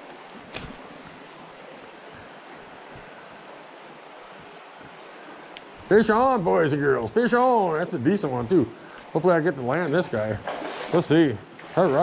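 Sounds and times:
creek flowing over stones: 0.0 - 12.0.

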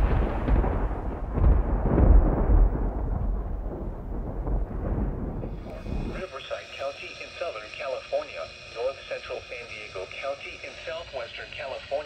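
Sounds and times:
radio voice through small speaker: 5.6 - 12.0.

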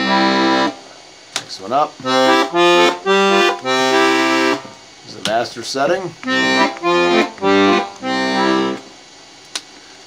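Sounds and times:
accordion bass and chord presses: 0.0 - 1.0, 2.0 - 5.4, 6.1 - 9.0.

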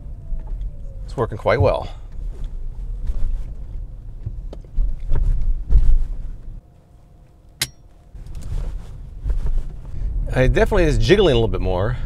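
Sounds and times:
low road rumble: 0.0 - 12.0
sharp click: 7.6 - 7.8.

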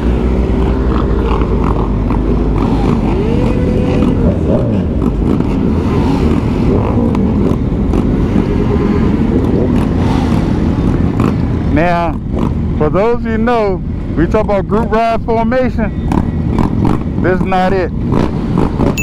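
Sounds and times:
motorcycle engine revving: 0.0 - 19.0
motorcycle engines running: 0.0 - 19.0
wind and road noise: 0.0 - 19.0.

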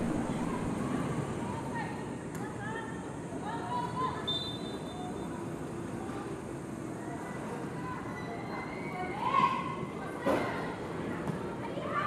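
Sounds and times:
open-air background noise: 0.0 - 12.0.

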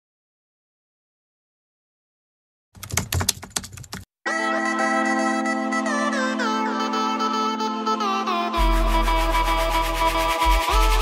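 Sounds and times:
keyboard key clicks: 2.8 - 4.0
music with low drone and melody: 4.3 - 11.0.

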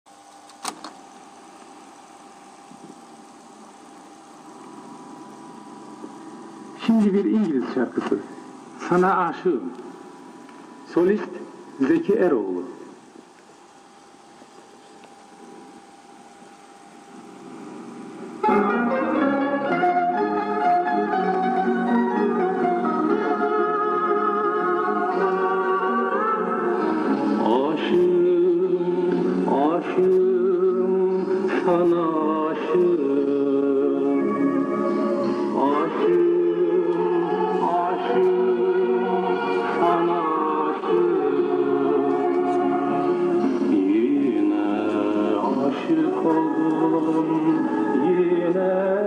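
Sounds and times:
faint hum: 0.1 - 49.0
tape hiss: 0.1 - 49.0
tape transport running: 0.3 - 2.0
tape recorder key clunk: 0.5 - 1.0.

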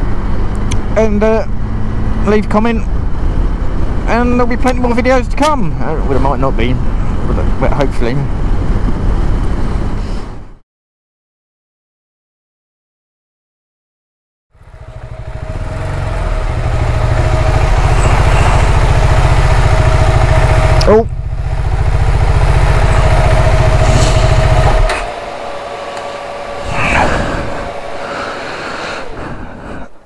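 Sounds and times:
motorcycle engine rumbling: 14.6 - 30.0.

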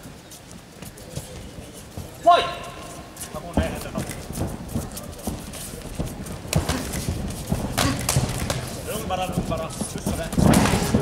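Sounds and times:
fighters' thuds and slaps: 3.5 - 11.0.

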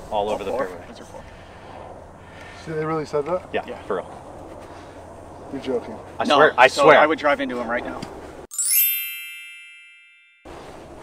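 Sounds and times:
bright bell-like chime: 8.5 - 10.7.

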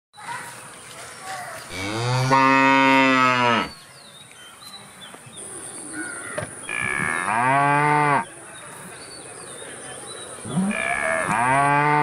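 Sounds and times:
cow mooing: 1.8 - 3.7, 6.7 - 8.3, 10.5 - 12.0.

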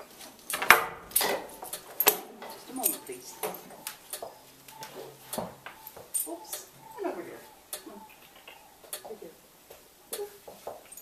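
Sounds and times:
bridle buckles clinking: 0.0 - 11.0.

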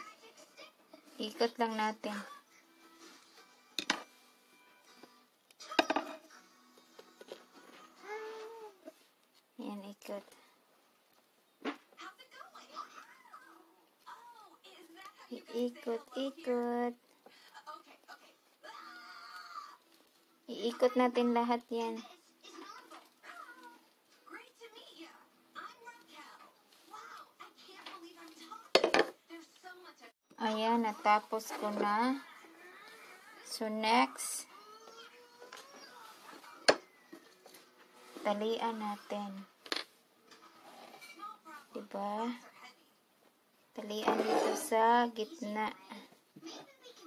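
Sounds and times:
faint background music: 0.0 - 47.0
small objects knocking on tabletop: 3.8 - 4.1, 5.7 - 6.3, 28.8 - 29.2.

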